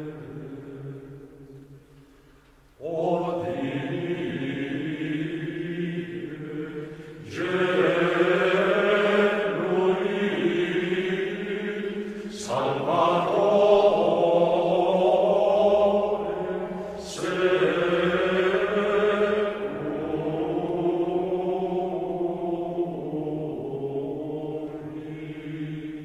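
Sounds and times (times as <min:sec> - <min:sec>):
male choir chanting in unison: 0:00.0 - 0:01.7, 0:02.8 - 0:26.0
singers breathing: 0:06.7 - 0:07.3, 0:11.9 - 0:12.5, 0:16.5 - 0:17.2.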